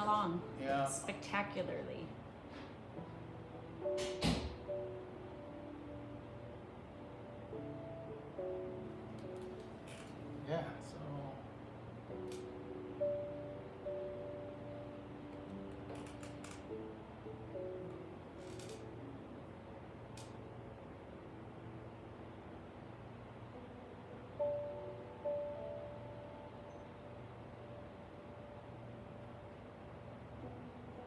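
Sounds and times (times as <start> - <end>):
slow background music: 0.0 - 31.0.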